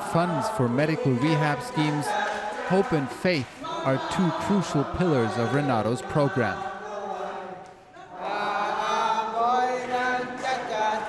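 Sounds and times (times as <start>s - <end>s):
group chanting in held notes: 0.0s - 11.0s.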